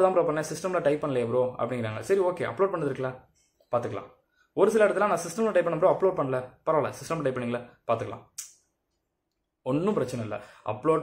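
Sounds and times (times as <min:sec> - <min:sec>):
man speaking: 0:00.0 - 0:08.5, 0:09.6 - 0:11.0.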